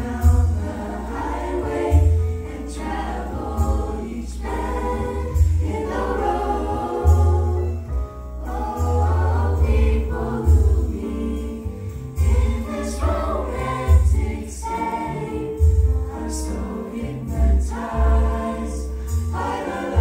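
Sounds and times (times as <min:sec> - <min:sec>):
a cappella group singing harmony: 0:00.0 - 0:20.0.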